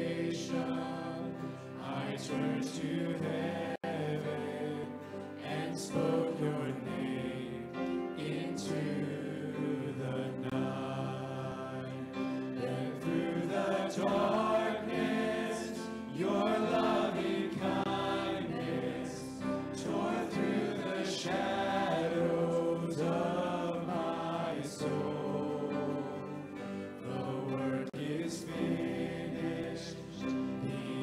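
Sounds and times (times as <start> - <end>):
acoustic guitar: 0.0 - 31.0
congregation singing along: 0.0 - 31.0
voices singing in harmony: 0.0 - 31.0.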